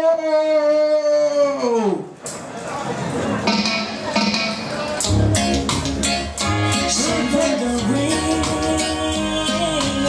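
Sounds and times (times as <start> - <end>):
crowd noise: 0.0 - 10.0
music: 3.5 - 10.0.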